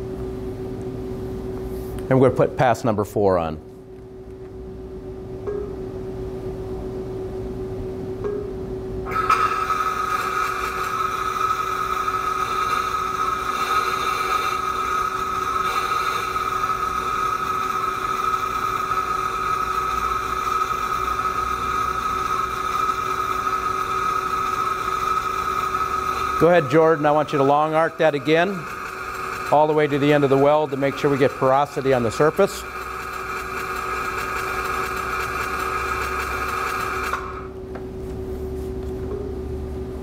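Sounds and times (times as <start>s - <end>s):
steady low hum: 0.0s - 36.4s, 37.1s - 40.0s
welding arc hiss and buzz: 9.1s - 37.6s.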